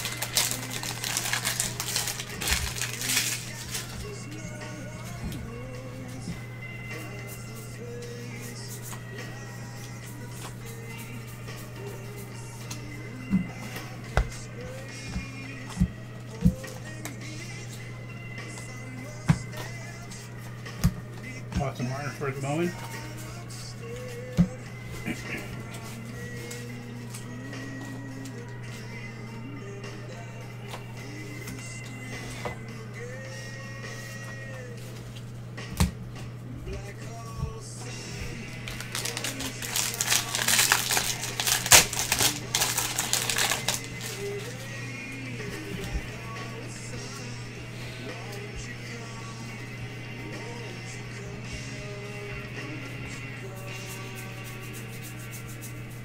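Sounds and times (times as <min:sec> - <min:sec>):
wrapper tearing and crinkling: 0:00.0 - 0:04.0, 0:38.6 - 0:44.3
quiet background music: 0:00.0 - 0:56.0.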